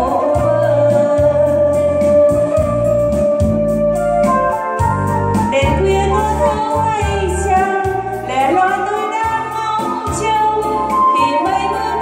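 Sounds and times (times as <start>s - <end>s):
woman singing into microphone: 0.0s - 3.1s, 5.5s - 12.0s
electronic keyboard bass notes: 0.0s - 12.0s
steady beat: 2.3s - 8.4s.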